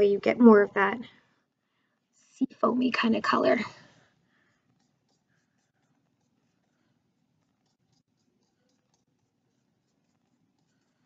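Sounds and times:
paintbrush dabbing on paper: 0:03.2 - 0:11.0.

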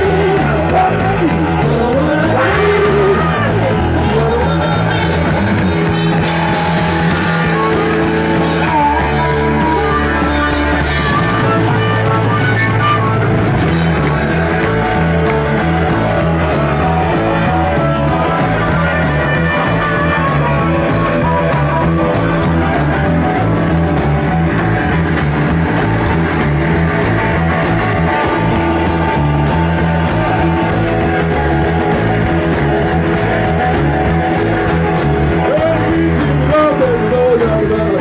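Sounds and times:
garage rock band playing: 0:00.0 - 0:38.0.

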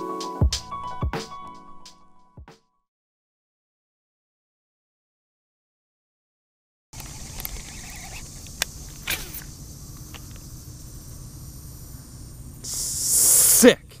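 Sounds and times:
fishing reel whirring: 0:07.0 - 0:09.5.

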